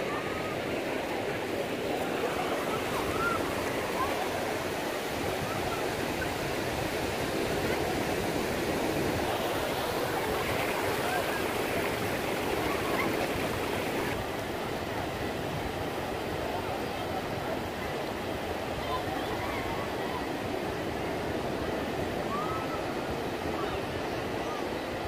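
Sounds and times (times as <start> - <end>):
faint voices of bathers: 0.0 - 25.0
ocean surf rushing: 0.0 - 25.0.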